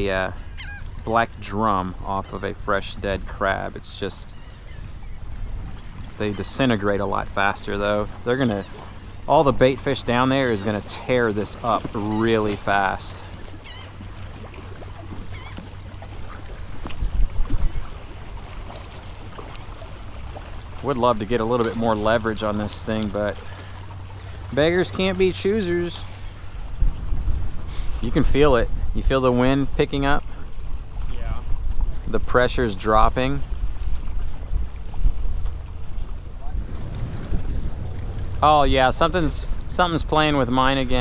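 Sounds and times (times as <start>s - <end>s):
wind buffeting microphone: 0.0s - 41.0s
water lapping against rocks: 4.3s - 41.0s
gusty wind buffeting microphone: 16.3s - 18.7s, 26.1s - 32.3s, 33.4s - 41.0s.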